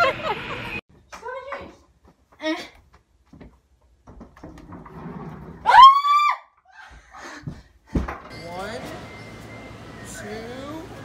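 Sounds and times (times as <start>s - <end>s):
girl screaming: 5.7s - 6.6s.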